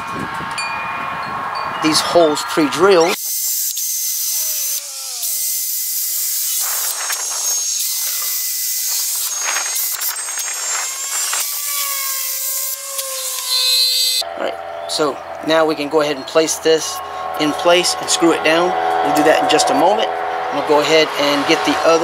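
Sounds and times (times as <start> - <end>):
cordless drill whirring: 3.2 - 14.2.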